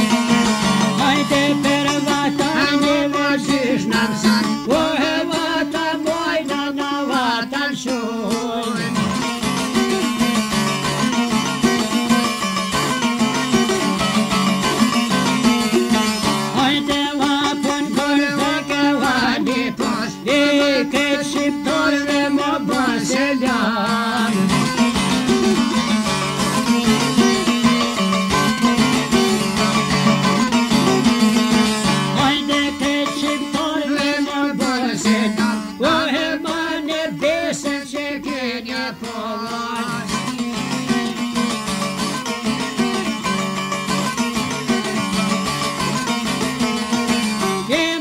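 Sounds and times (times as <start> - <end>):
plucked string folk music: 0.0 - 48.0.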